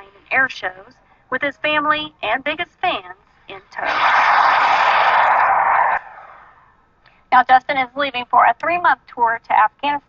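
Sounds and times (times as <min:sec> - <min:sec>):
small jet engine flying past: 0:03.8 - 0:06.4.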